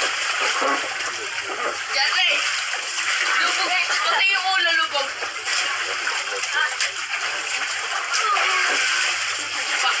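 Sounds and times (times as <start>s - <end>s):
water splashing in pool: 0.0s - 10.0s.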